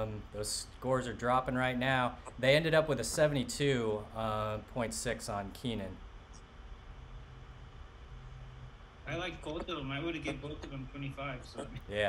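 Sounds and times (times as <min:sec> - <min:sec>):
background hiss: 0:00.0 - 0:12.0
faint hum: 0:00.0 - 0:12.0.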